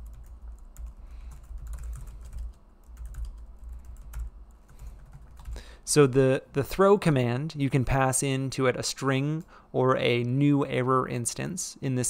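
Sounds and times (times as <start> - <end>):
keyboard typing: 0.0 - 5.6
steady low hum: 0.0 - 10.0.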